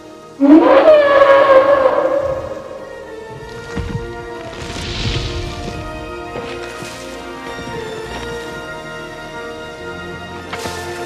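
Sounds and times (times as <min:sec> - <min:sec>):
dinosaur hooting call: 0:00.4 - 0:03.2.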